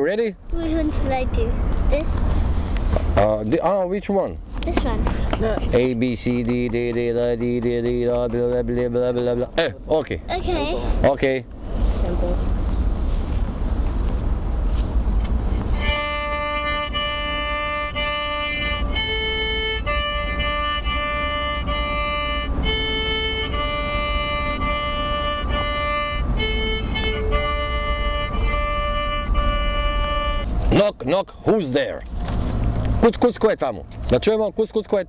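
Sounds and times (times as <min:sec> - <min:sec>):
noisy rumble: 0:00.0 - 0:35.0
violin playing simple tune: 0:15.7 - 0:30.6.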